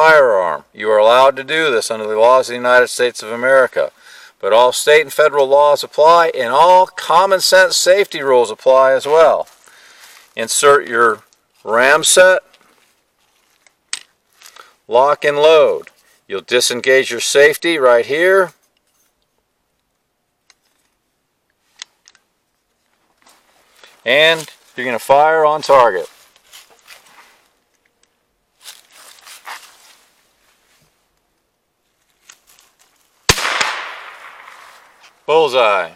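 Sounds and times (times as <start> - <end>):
faint handling sounds: 11.2 - 14.9, 18.5 - 33.3
gunshot with echo: 33.3 - 35.0
smaller crack: 33.3 - 35.3.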